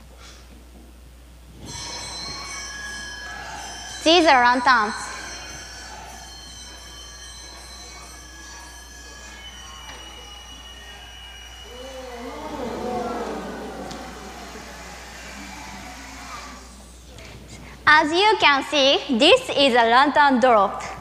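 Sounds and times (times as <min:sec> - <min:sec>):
faint steady high tones: 0:01.6 - 0:17.0.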